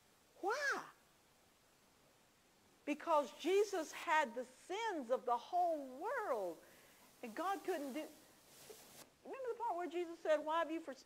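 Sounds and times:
person speaking: 0:00.4 - 0:01.0, 0:07.2 - 0:11.0.

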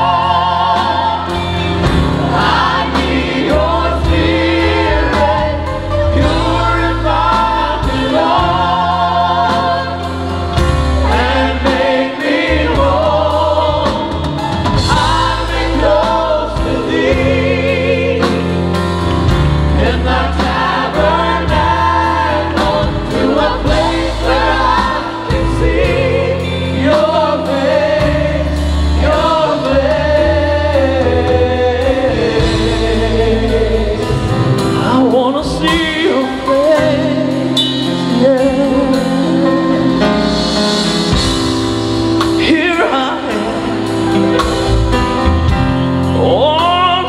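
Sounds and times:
live band playing: 0:00.0 - 0:47.0
vocal group singing: 0:00.0 - 0:47.0.

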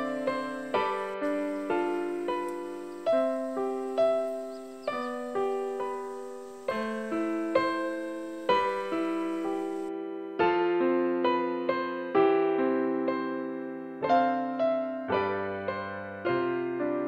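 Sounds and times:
keyboard piano notes and chords: 0:00.0 - 0:17.0.

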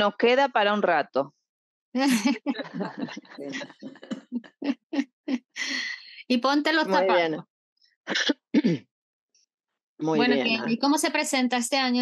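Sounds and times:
woman laughing: 0:02.0 - 0:05.8.

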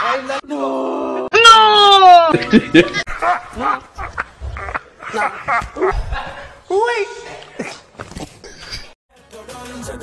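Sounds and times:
man wailing: 0:00.7 - 0:06.1.

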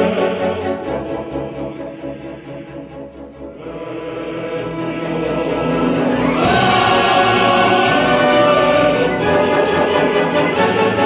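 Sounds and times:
male chorus singing: 0:00.0 - 0:11.0
opera orchestra: 0:00.0 - 0:11.0.

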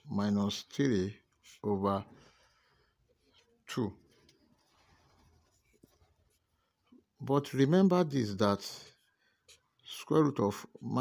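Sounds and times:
pen scratching on paper: 0:03.2 - 0:06.6.

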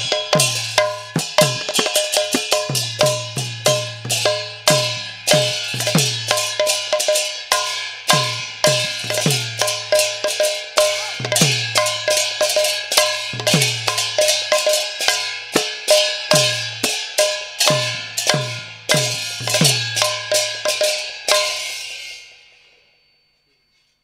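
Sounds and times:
hand cymbals clashing: 0:00.0 - 0:23.8.

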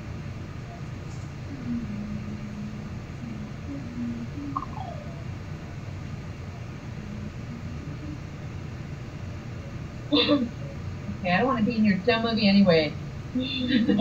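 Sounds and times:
low background hum: 0:00.0 - 0:14.0
faint short tones: 0:00.6 - 0:05.4.

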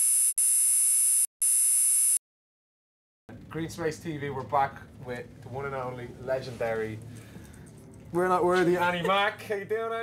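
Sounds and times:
harsh high-pitched electronic buzz: 0:00.0 - 0:02.2.

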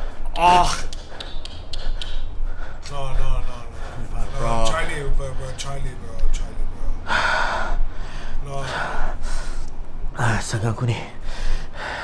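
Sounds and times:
steady low rumble: 0:00.0 - 0:12.0
sharp taps: 0:00.8 - 0:02.5.

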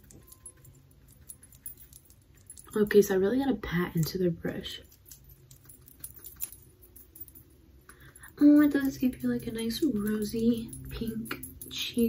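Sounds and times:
bracelet beads clinking: 0:00.0 - 0:12.0.

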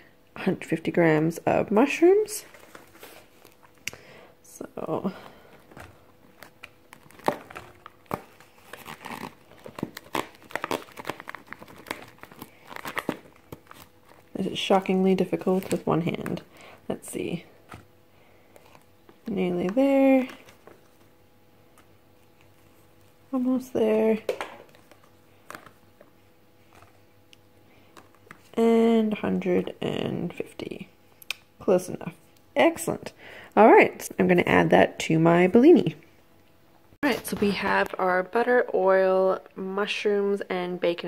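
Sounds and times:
faint steady hum: 0:00.0 - 0:41.0.

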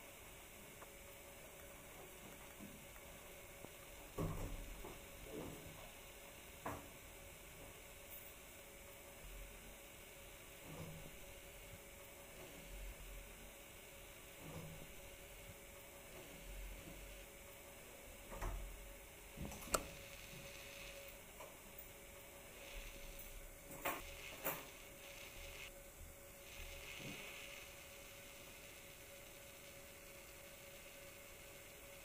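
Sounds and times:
faint hiss and hum: 0:00.0 - 0:32.0.

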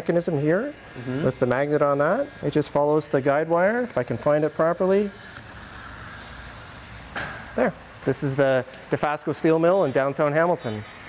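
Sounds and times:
tiny electric motor whirring: 0:00.0 - 0:08.0.

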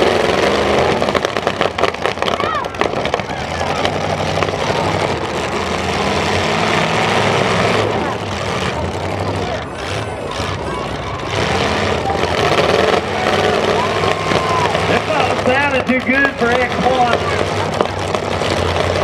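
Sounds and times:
car engines running loudly: 0:00.0 - 0:19.0
crowd noise: 0:00.0 - 0:19.0.

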